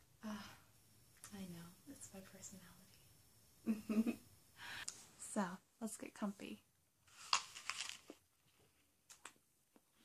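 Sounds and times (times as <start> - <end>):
biting into crisp apple: 7.2 - 8.2.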